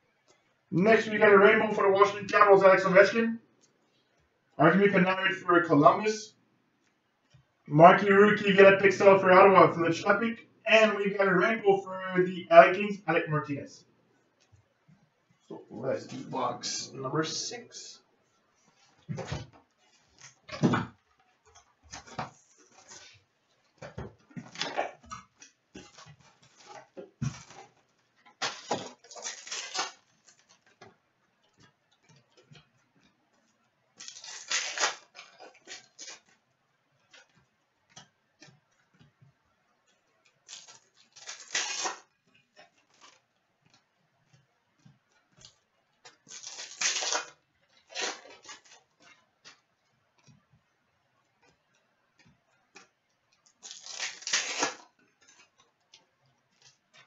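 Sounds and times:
card pack wrappers ripping: 28.4s - 30.6s, 34.0s - 36.3s, 40.5s - 42.1s, 46.1s - 48.8s, 53.6s - 54.9s.

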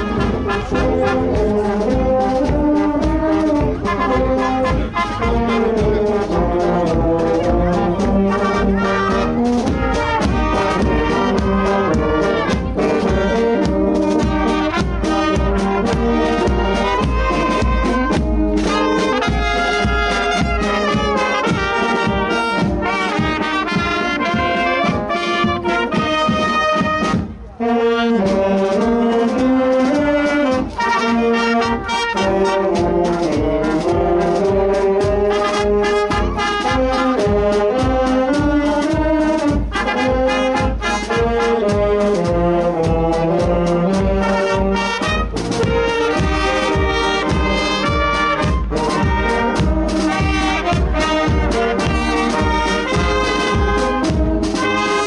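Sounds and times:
low drum beat: 0.0s - 27.6s, 28.2s - 55.0s
brass and wind band playing: 0.0s - 55.0s.

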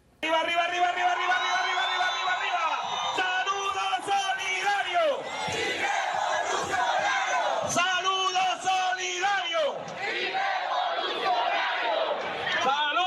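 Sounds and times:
large crowd shouting: 0.2s - 13.0s.

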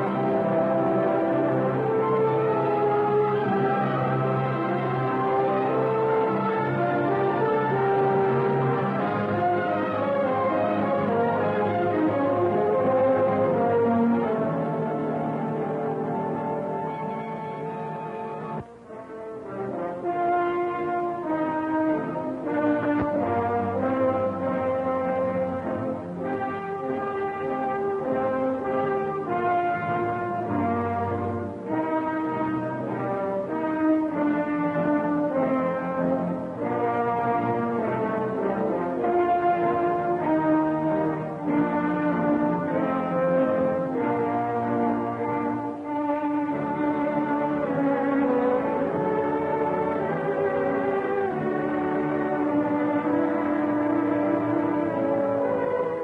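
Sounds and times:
orchestral music with brass melody: 0.0s - 56.0s.

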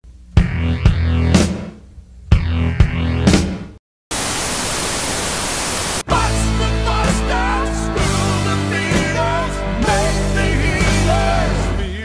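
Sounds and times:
rock band with bass and guitar: 0.4s - 1.7s, 6.1s - 12.0s
static hiss: 4.1s - 6.1s.

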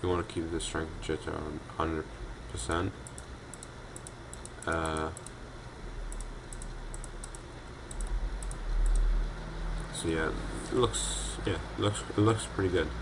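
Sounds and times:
keyboard and mouse clicking: 3.0s - 5.4s, 6.1s - 9.1s.

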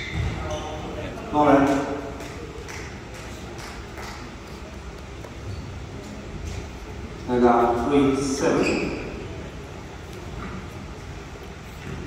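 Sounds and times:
hall background hum: 0.0s - 12.0s.

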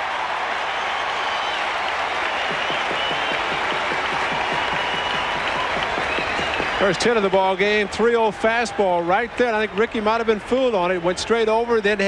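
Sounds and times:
stadium crowd applauding and cheering: 0.0s - 12.0s.

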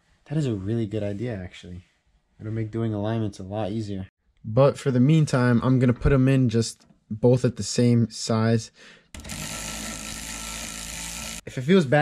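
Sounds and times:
cordless electric ratchet running: 9.2s - 11.5s.

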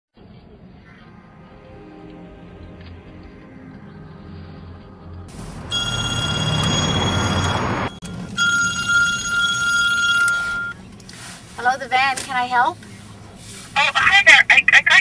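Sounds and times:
telephone ringing: 5.6s - 10.8s.

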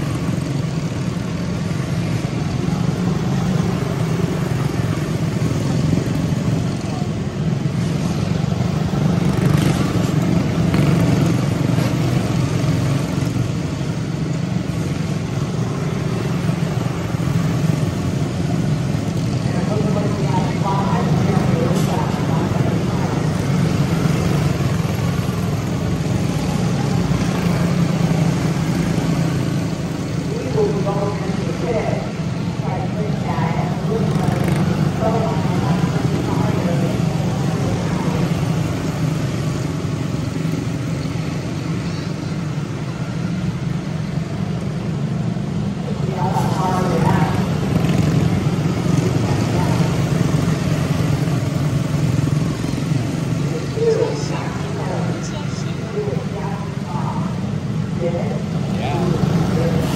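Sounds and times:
race car engines droning: 0.0s - 59.9s
voices talking: 15.3s - 43.0s, 45.8s - 59.9s.

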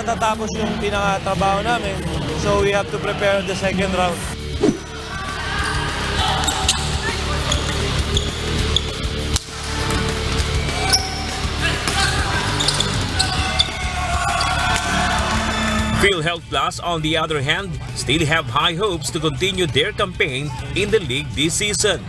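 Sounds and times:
crowd voices: 0.0s - 9.0s, 9.6s - 16.3s
background music: 0.0s - 22.0s
shoe squeaks: 6.4s - 9.0s, 10.8s - 14.6s.

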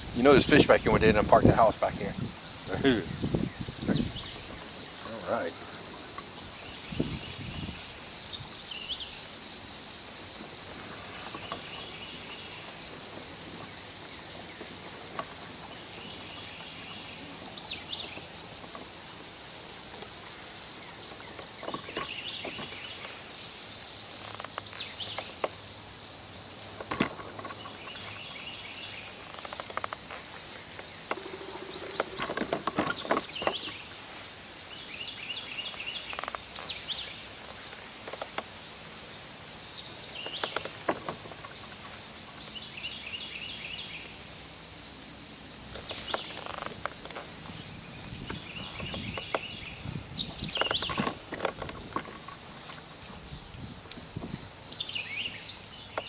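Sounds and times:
birds calling: 0.0s - 56.0s
insects droning: 0.0s - 56.0s.

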